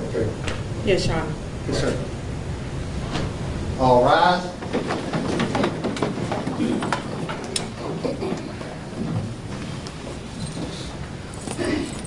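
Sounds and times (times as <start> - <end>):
sharp knocks: 4.6 - 8.3
crowd shuffling and rustling: 4.6 - 12.0.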